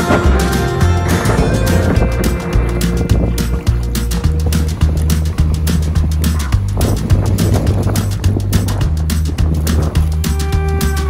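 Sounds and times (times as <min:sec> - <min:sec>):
bass line held notes: 0:00.0 - 0:11.0
steady drum beat: 0:00.0 - 0:11.0.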